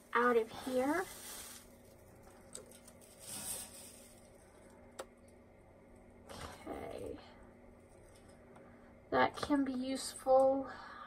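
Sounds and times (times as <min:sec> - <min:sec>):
packing material rustling: 0:00.0 - 0:04.7.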